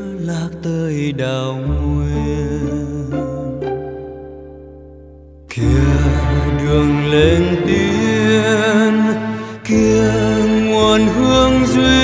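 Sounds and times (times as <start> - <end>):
pop song held chord: 0.0 - 12.0.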